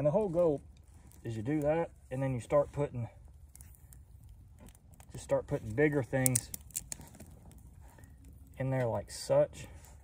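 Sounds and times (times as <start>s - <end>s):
small fire burning: 0.0s - 10.0s
twigs snapping and clicking: 3.3s - 9.0s.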